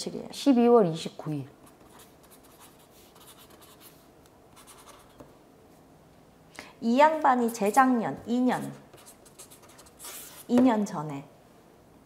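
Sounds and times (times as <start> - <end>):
pen scratching on paper: 1.8 - 4.0, 4.6 - 5.2, 8.6 - 10.6.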